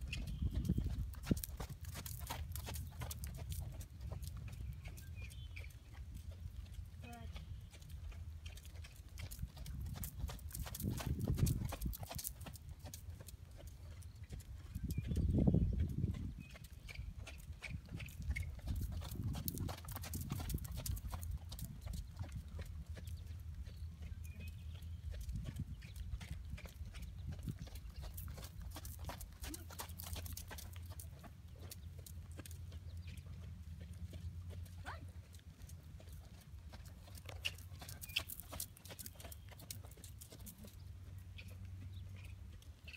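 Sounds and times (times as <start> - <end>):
horse hooves on sand: 0.0 - 42.9.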